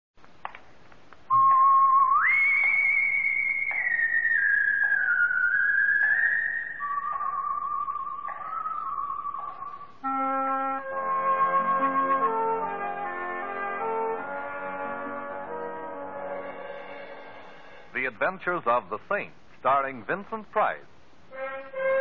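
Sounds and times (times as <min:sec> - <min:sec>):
recording hiss: 0:00.2 - 0:22.0
high pure-toned melody: 0:06.8 - 0:17.9.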